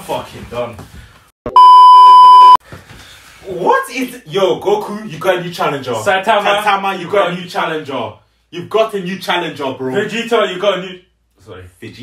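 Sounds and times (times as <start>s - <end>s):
censor bleep: 1.5s - 2.6s.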